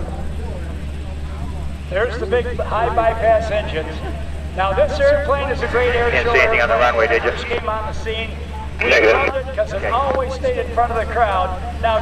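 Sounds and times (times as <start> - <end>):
distant jet engines rumbling: 0.1 - 12.0.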